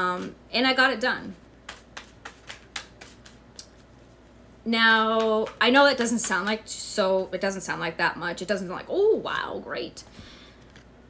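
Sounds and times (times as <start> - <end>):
cards being shuffled: 1.6 - 4.2.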